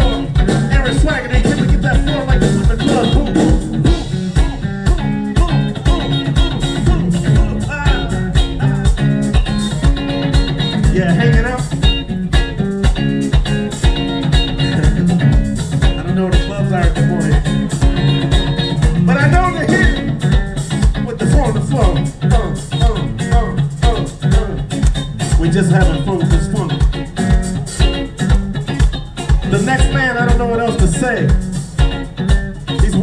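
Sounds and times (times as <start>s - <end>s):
electric rhythm guitar: 0.0s - 33.0s
funk band playing: 0.0s - 33.0s.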